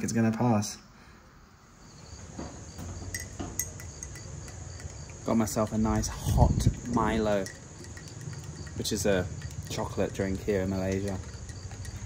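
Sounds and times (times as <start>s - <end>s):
insects chirping: 0.4s - 12.0s.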